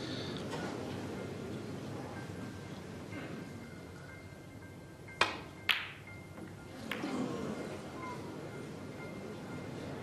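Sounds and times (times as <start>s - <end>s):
soft background music: 0.0s - 10.0s
snooker balls clicking: 5.2s - 7.2s.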